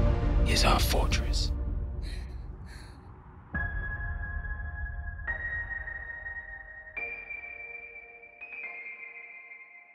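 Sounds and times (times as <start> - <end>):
low rumble: 0.0 - 5.4.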